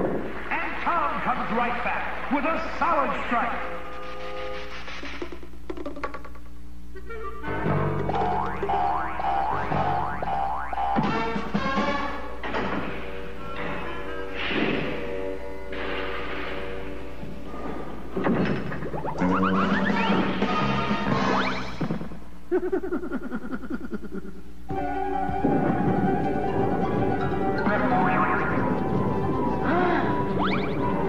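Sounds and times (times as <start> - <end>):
cartoon background music: 7.0 - 17.2, 18.2 - 22.1, 24.7 - 31.0
comic sound effects: 7.6 - 11.4, 18.3 - 24.4, 27.6 - 31.0.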